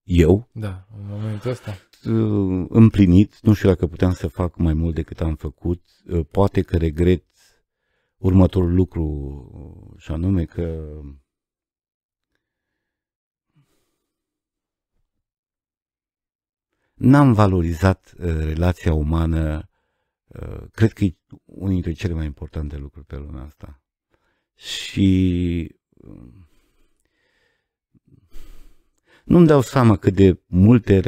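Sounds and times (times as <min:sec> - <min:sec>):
man breathing: 0:07.7 - 0:08.2, 0:12.3 - 0:14.3, 0:26.3 - 0:29.3.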